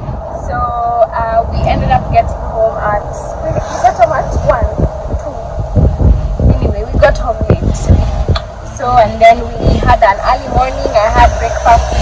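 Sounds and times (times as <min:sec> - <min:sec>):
car interior rumble: 0:00.0 - 0:12.0
woman talking or singing: 0:00.4 - 0:05.4, 0:06.5 - 0:12.0.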